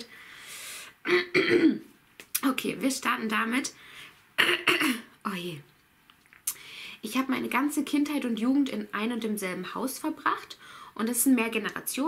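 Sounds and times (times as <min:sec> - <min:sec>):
woman clearing her throat: 0:01.1 - 0:01.9, 0:04.4 - 0:05.1.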